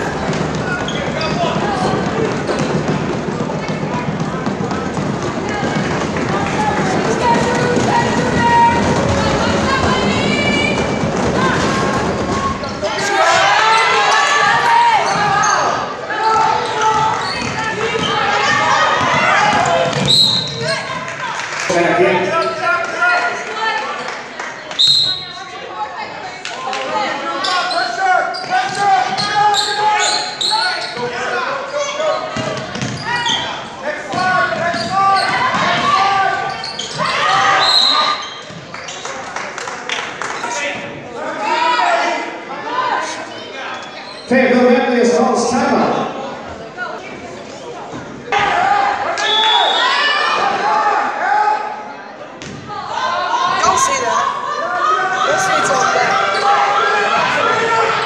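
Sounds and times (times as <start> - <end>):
echoing voices: 0.0 - 20.1, 53.4 - 58.0
basketball bouncing on wood floor: 0.2 - 11.7, 32.4 - 33.0.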